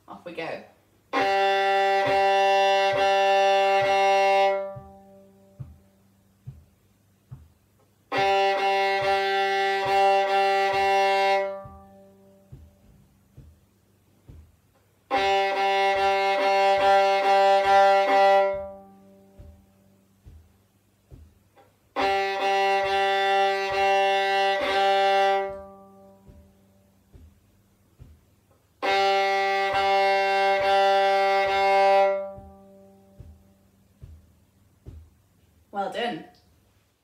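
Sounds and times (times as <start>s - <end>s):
violin short bow strokes: 1.1s - 6.6s, 8.1s - 13.6s, 14.3s - 28.2s, 28.8s - 35.1s.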